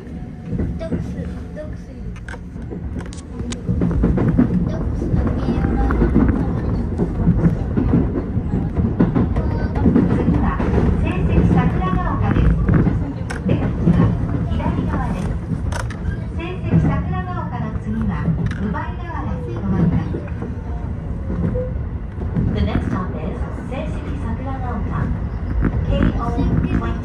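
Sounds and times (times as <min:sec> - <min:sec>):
train wheels and motors rumbling: 0:00.0 - 0:27.0.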